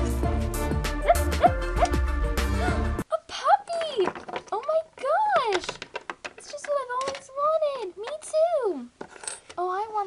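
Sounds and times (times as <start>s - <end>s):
plastic toy click: 5.4s - 8.3s.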